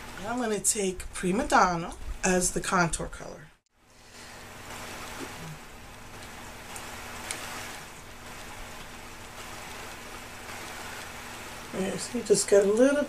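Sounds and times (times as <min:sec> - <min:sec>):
steady hiss: 0:03.8 - 0:13.0.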